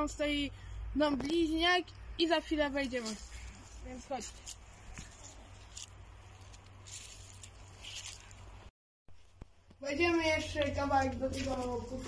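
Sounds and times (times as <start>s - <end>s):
rustling and scuffing footsteps: 2.6s - 12.0s.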